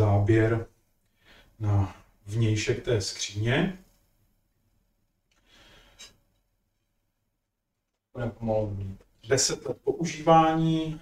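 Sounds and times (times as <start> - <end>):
faint breath-like hiss: 1.1 - 2.1, 5.4 - 6.2.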